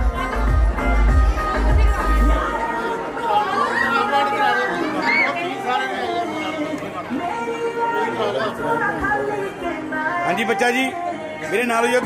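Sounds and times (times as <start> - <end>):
overlapping chatter of people: 0.0 - 12.0.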